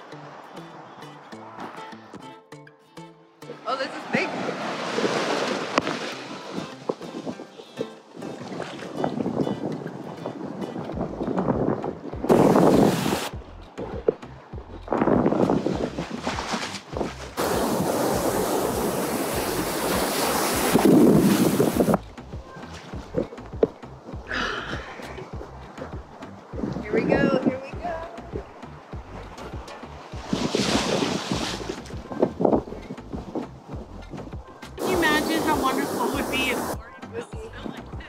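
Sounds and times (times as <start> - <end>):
ocean surf churning: 3.6 - 13.4, 17.4 - 22.0, 30.0 - 32.1, 34.8 - 36.8
wind buffeting microphone: 4.1 - 38.0.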